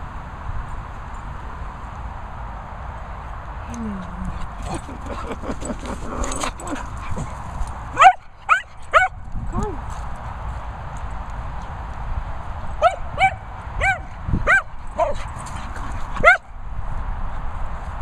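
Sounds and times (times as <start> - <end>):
dog barking excitedly: 6.0 - 9.2, 12.8 - 15.3, 16.2 - 16.5.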